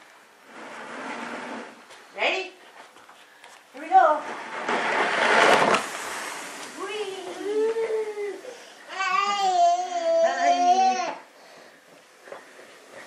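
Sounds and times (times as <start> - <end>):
plastic sled scraping floor: 0.0 - 2.1, 3.8 - 10.0.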